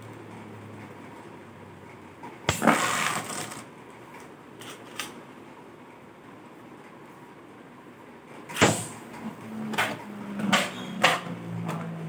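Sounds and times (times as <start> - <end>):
spinning top launch whoosh: 2.5 - 3.6
spinning top clatter: 2.5 - 3.7
spinning top whirring: 2.5 - 3.7.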